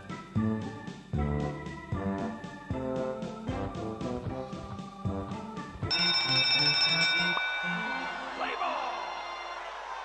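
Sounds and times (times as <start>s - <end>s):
bright bell-like chime: 5.9s - 8.9s.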